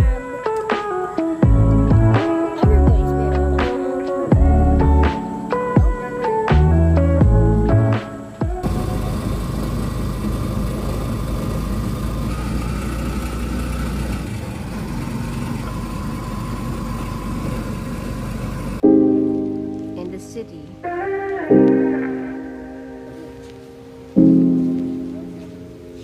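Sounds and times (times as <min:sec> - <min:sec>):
piano music: 0:00.0 - 0:10.5, 0:18.8 - 0:26.0
road and wind noise: 0:08.6 - 0:18.8.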